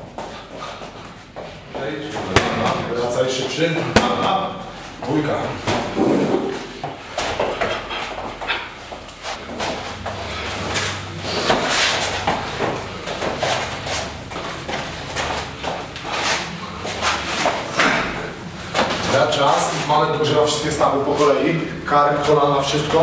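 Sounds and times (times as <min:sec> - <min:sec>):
feet scuffing on a mat: 0:00.0 - 0:02.5, 0:05.7 - 0:19.9
low steady hum: 0:00.0 - 0:23.0.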